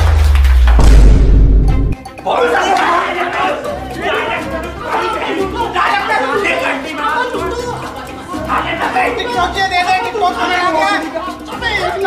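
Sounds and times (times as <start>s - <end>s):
people talking over one another: 2.2s - 12.0s.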